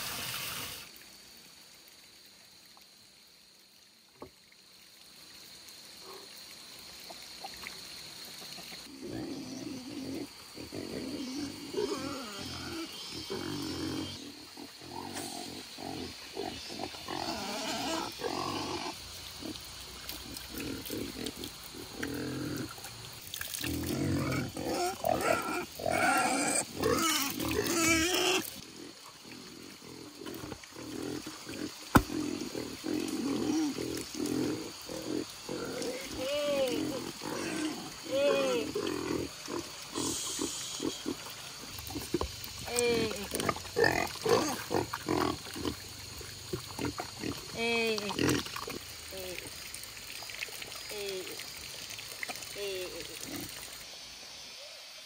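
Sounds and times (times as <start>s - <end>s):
pigs grunting and squealing: 8.8s - 22.8s, 23.5s - 45.9s, 46.5s - 48.8s.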